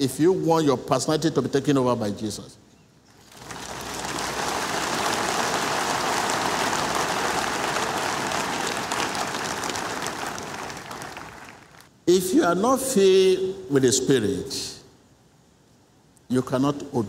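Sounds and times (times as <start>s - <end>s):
crowd applauding: 3.2s - 11.9s.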